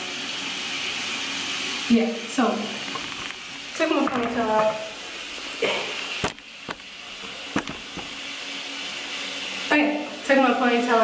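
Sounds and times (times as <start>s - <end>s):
camera handling knocks: 6.2s - 8.2s.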